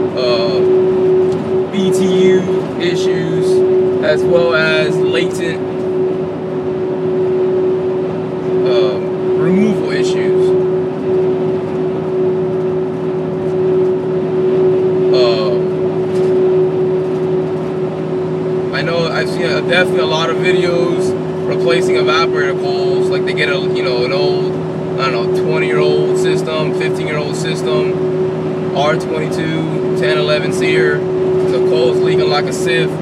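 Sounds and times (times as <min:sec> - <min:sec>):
constant hum: 0:00.0 - 0:33.0
van road and engine noise: 0:00.0 - 0:33.0.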